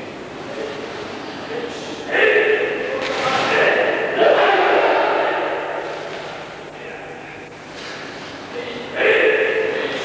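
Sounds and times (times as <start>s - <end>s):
group shouting together: 4.0s - 5.7s.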